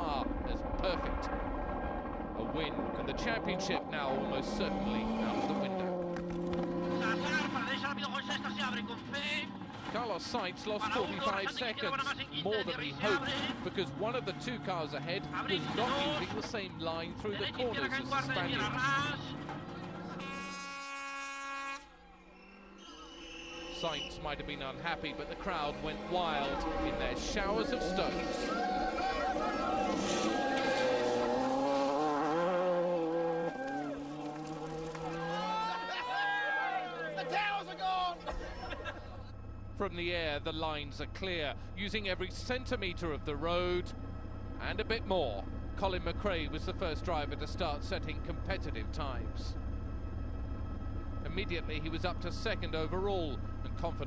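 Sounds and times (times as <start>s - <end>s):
car engine running: 0.0s - 20.3s, 23.6s - 36.0s, 36.8s - 54.0s
man calling over intercom: 7.0s - 9.4s, 10.0s - 19.4s, 23.7s - 28.7s, 36.8s - 38.2s, 39.8s - 43.9s, 44.6s - 49.5s, 51.2s - 54.0s.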